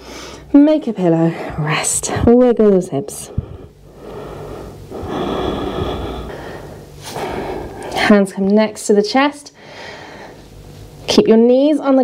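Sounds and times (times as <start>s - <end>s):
woman breathing: 0.0s - 0.5s, 3.2s - 8.1s, 9.6s - 10.6s.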